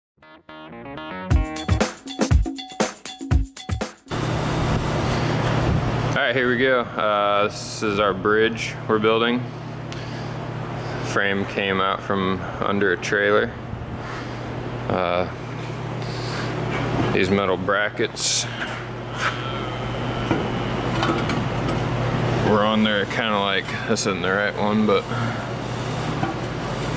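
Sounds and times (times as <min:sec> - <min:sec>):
music: 0:00.2 - 0:04.1
steady low machine hum: 0:04.1 - 0:26.9.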